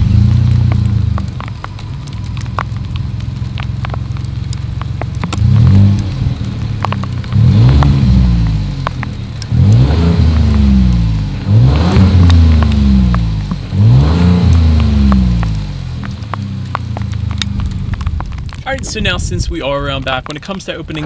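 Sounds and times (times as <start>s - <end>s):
car engine revving: 0.0s - 19.0s
car engine idling: 0.0s - 21.0s.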